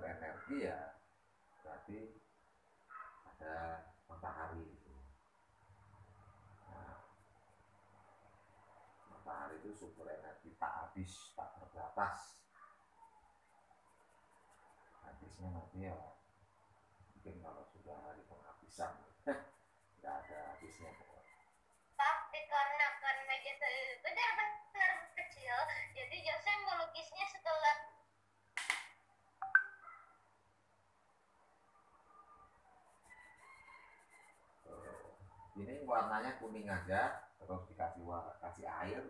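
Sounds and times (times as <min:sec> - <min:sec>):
paintbrush scratching on paper: 0:13.5 - 0:15.8, 0:18.5 - 0:27.1, 0:32.8 - 0:37.7.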